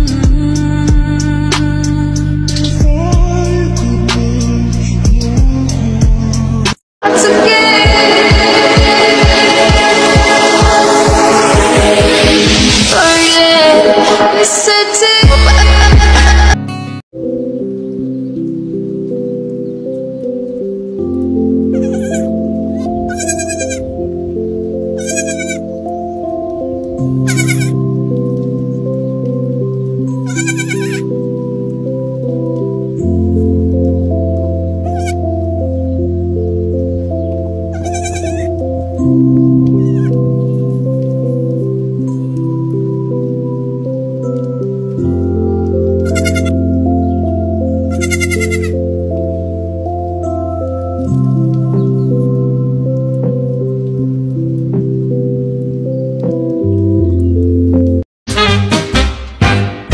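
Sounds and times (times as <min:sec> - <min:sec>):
music of sustained notes: 0:00.0 - 0:59.9
baby goat bleating: 0:21.7 - 0:23.9, 0:25.0 - 0:25.7, 0:27.2 - 0:27.8, 0:30.1 - 0:31.0, 0:34.8 - 0:35.2, 0:37.7 - 0:38.5, 0:39.8 - 0:40.2, 0:46.0 - 0:46.6, 0:47.9 - 0:48.8.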